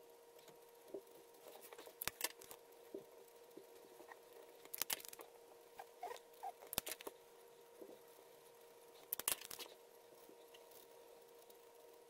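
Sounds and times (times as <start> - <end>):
sharp clicks: 4.7 - 5.2, 6.6 - 7.1, 9.1 - 9.7.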